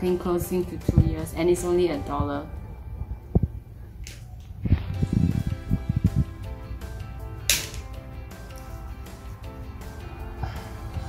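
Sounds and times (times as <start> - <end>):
music of sustained notes: 0.0 - 3.8, 4.6 - 11.0.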